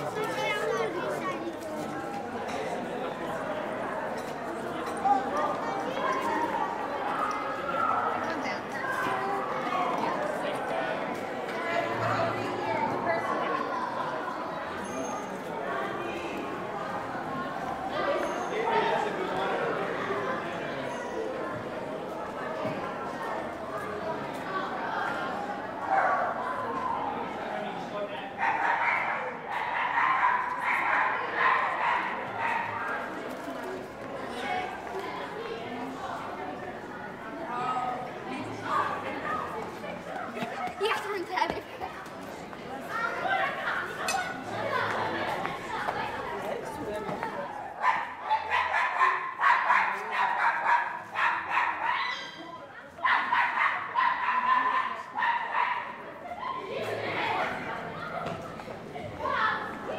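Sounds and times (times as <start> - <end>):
street chatter: 0.0 - 59.9.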